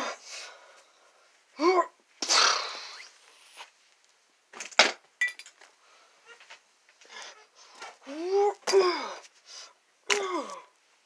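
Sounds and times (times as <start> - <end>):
person sneezing: 1.6 - 3.1.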